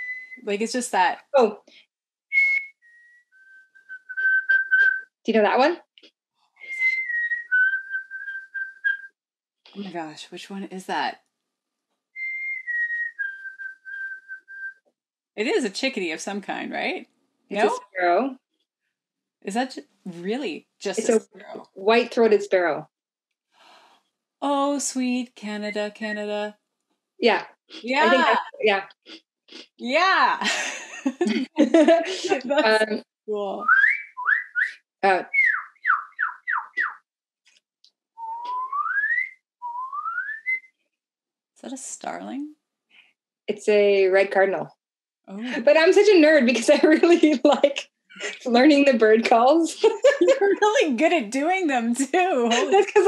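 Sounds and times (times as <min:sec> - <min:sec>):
person whistling birdsong: 0:00.0 - 0:00.4, 0:02.3 - 0:05.1, 0:06.6 - 0:09.1, 0:12.2 - 0:14.8, 0:33.6 - 0:37.0, 0:38.2 - 0:40.7.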